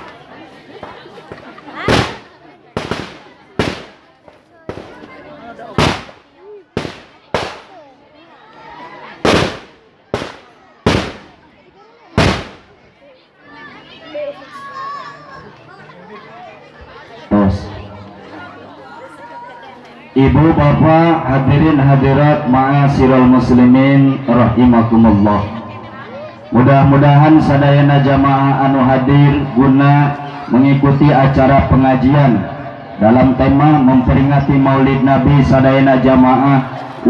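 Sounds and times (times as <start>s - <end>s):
faint crowd voices: 0.0s - 37.0s
firecrackers banging: 0.8s - 7.9s, 9.2s - 11.5s, 12.2s - 12.8s.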